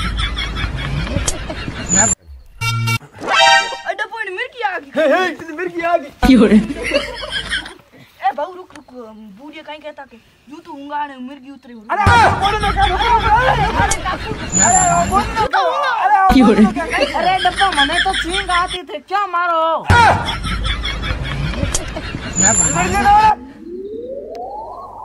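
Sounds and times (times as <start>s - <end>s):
men talking and exclaiming: 3.0s - 24.0s
man's voice: 12.0s - 18.8s
rumbling noise: 12.2s - 15.5s.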